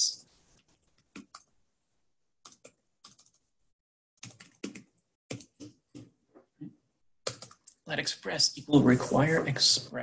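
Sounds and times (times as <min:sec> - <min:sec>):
computer keyboard typing: 0:01.1 - 0:01.5, 0:02.4 - 0:03.4, 0:04.2 - 0:06.2, 0:07.2 - 0:07.8.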